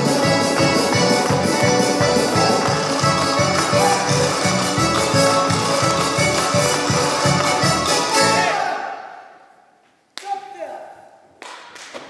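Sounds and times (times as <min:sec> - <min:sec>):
lively folk dance music: 0:00.0 - 0:08.8.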